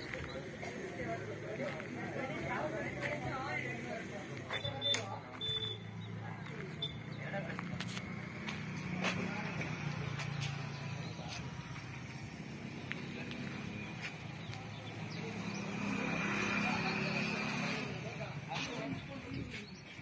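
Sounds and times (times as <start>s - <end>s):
people talking: 0.0s - 12.0s, 12.7s - 20.0s.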